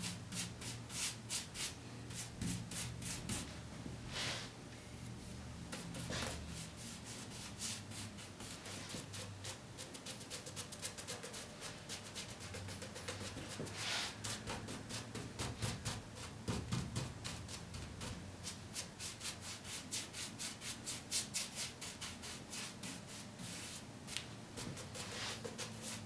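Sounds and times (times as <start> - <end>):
paintbrush scrubbing on wood: 5.8 - 15.2, 24.6 - 26.0.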